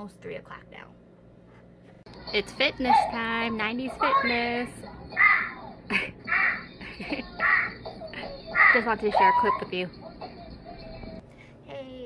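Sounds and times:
harsh cawing calls: 0:05.1 - 0:06.8, 0:07.4 - 0:09.7.

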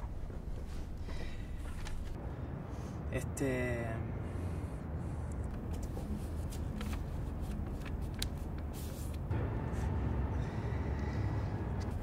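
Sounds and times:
low background rumble: 0:00.0 - 0:12.0
paper flyers rustling: 0:05.6 - 0:09.3.

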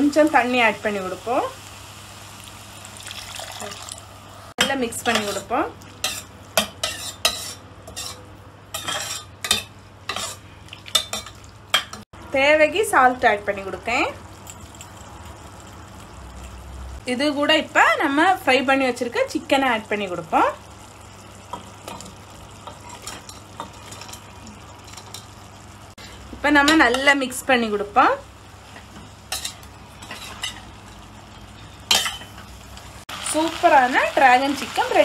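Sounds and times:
faint frying sizzle: 0:00.0 - 0:35.0
metal spoon scraping a pot: 0:05.1 - 0:10.4.

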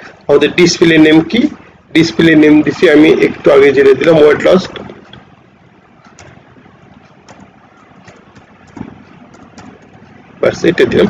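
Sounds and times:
low background hiss: 0:00.0 - 0:11.0
man talking: 0:00.3 - 0:05.1, 0:10.4 - 0:11.0
keyboard keystrokes: 0:06.0 - 0:10.0.

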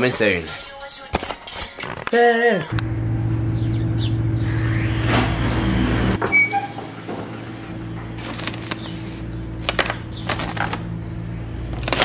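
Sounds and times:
low motor hum: 0:02.7 - 0:12.0.

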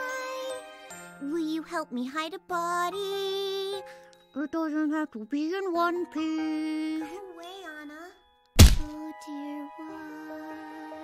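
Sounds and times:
backing music with held notes: 0:00.0 - 0:11.0
loud short impact thunk: 0:08.6 - 0:08.9.

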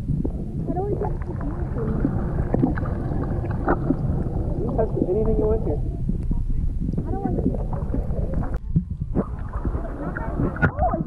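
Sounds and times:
steady low rumble: 0:00.0 - 0:11.0
indistinct voices: 0:00.5 - 0:08.6, 0:09.2 - 0:11.0.

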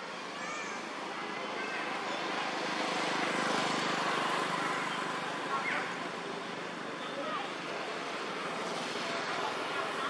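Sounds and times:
faint voices: 0:04.7 - 0:10.0.

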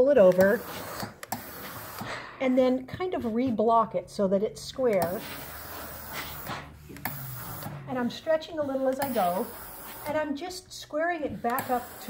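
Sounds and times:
steam iron hissing: 0:00.3 - 0:02.2, 0:05.0 - 0:07.8, 0:08.8 - 0:10.3, 0:11.5 - 0:12.0
steam puffs: 0:00.4 - 0:02.2, 0:05.0 - 0:07.8, 0:08.8 - 0:10.1.

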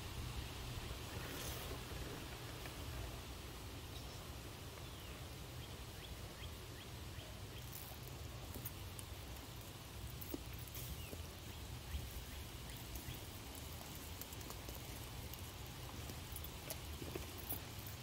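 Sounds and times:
toy car tyres crawling over rocks: 0:07.4 - 0:18.0.

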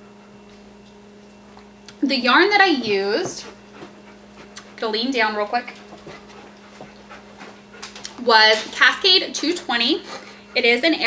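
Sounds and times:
dog panting: 0:02.9 - 0:11.0.

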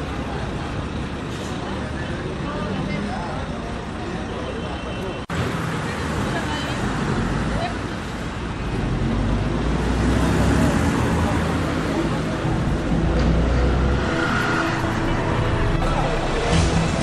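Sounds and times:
people talking: 0:00.0 - 0:08.2
road traffic noise: 0:00.0 - 0:17.0
vehicle engine rumbling: 0:00.0 - 0:17.0.

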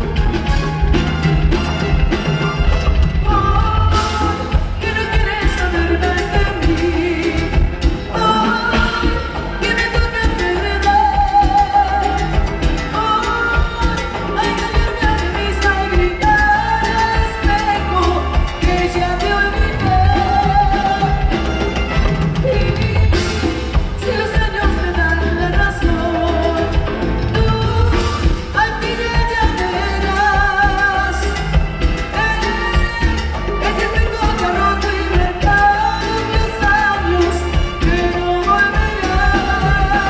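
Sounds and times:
latin dance band playing: 0:00.0 - 0:40.0
woman singing lead: 0:00.0 - 0:40.0.

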